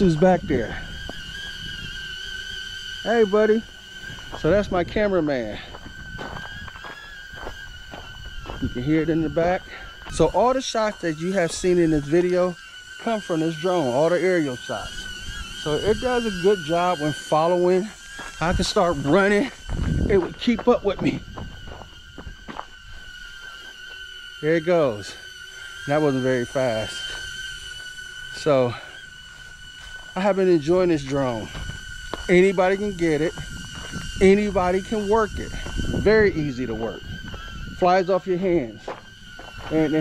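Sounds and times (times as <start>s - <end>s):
drone propellers whining: 0.0s - 40.0s
footsteps on gravel: 5.5s - 9.1s, 15.6s - 24.1s, 31.2s - 37.9s, 38.8s - 40.0s.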